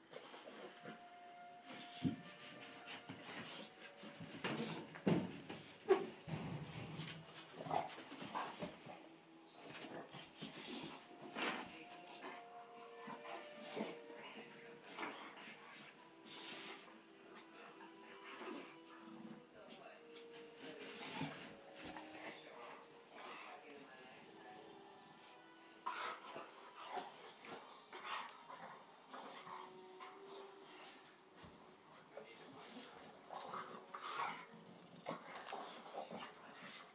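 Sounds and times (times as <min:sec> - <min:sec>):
dog scuffling on carpet: 0:01.7 - 0:08.9, 0:19.7 - 0:23.4.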